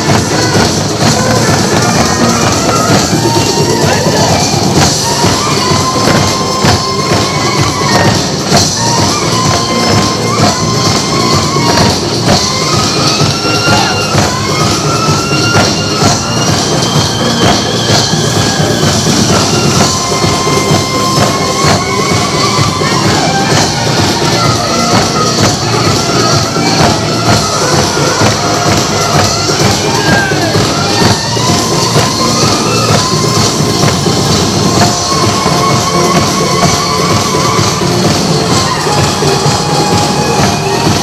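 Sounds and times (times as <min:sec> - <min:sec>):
high sliding melody: 0:00.0 - 0:41.0
small hand drums beating: 0:00.0 - 0:41.0.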